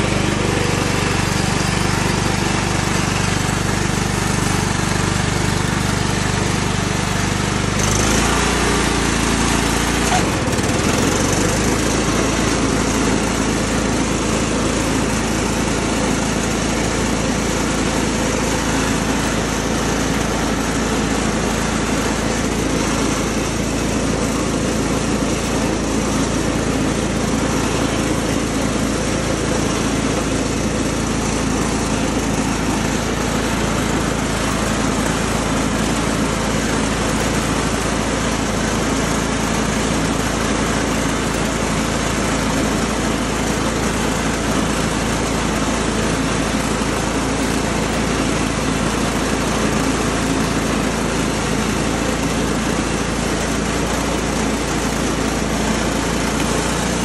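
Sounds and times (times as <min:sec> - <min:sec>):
lawn tractor engine running: 0:00.0 - 0:57.0
mower blades cutting grass: 0:00.0 - 0:57.0.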